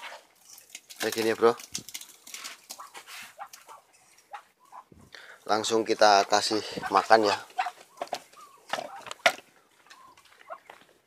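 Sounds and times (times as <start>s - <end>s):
wet squelches of feed mash: 0.0s - 11.0s
ducks calling and hissing: 2.6s - 5.4s, 6.0s - 10.8s.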